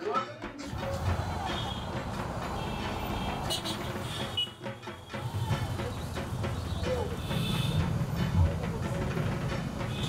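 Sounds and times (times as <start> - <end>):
faint music: 0.0 - 10.0
outdoor street noise: 0.0 - 10.0.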